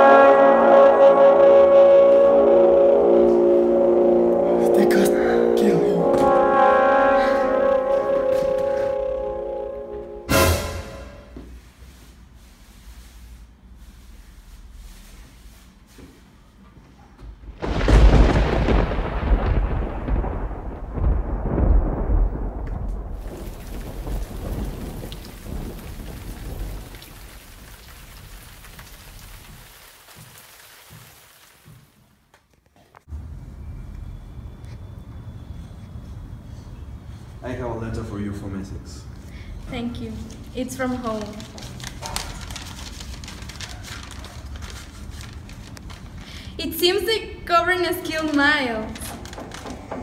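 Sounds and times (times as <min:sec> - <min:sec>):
thunder rolling: 0:05.4 - 0:11.3, 0:17.3 - 0:29.9
rain hissing: 0:17.5 - 0:32.2
paper rustling and crinkling: 0:40.1 - 0:46.5, 0:48.1 - 0:50.0.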